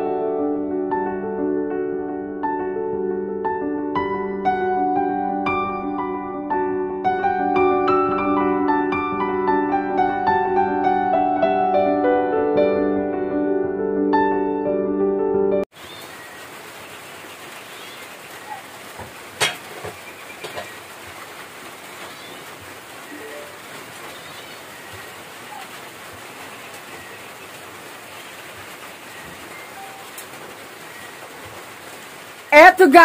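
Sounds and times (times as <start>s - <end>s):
faint clicks: 30.1s - 30.4s.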